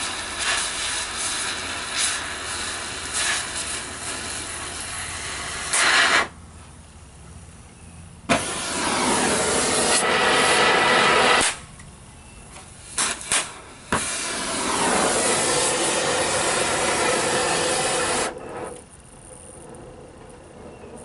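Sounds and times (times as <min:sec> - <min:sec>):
cutting torch hissing: 0:00.0 - 0:06.4, 0:08.3 - 0:11.7, 0:12.7 - 0:18.9.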